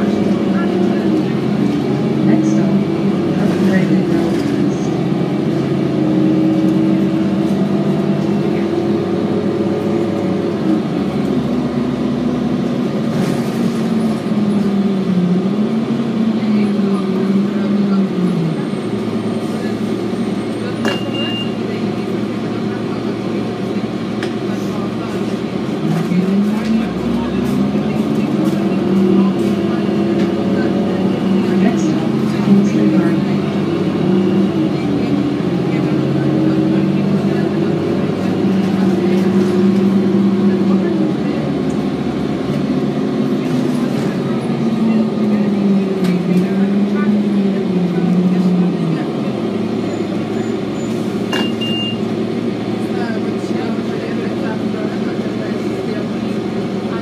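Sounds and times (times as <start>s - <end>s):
bus diesel engine from inside: 0.0s - 57.0s.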